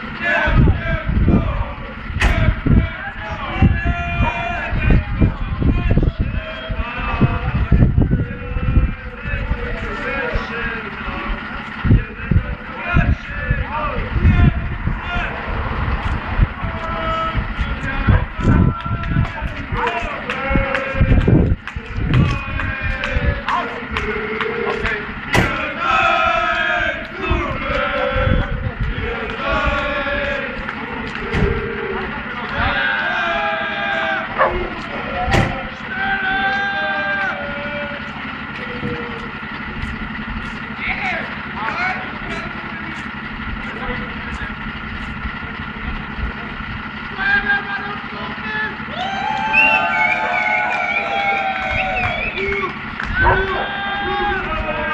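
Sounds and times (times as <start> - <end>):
low rumbling surges: 0.0 - 36.5
fire engine diesel engine: 0.0 - 54.9
indistinct voices: 0.0 - 54.9.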